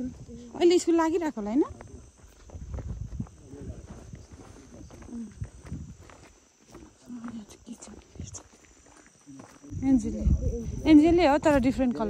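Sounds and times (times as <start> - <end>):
footsteps on dirt path: 0.0 - 12.0
high buzz of insects: 0.0 - 12.0.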